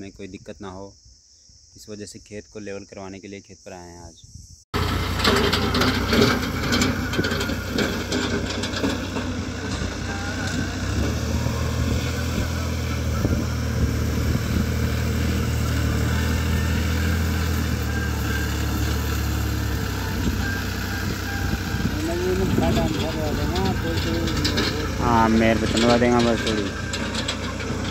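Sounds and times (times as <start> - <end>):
blade pushing soil: 4.8 - 27.9
tractor diesel engine under load: 4.8 - 27.9.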